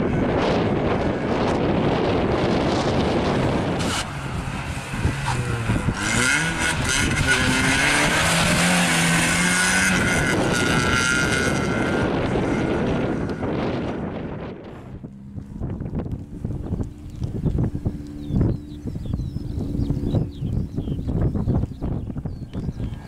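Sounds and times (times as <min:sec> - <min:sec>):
car engine revving past: 0:02.2 - 0:18.9.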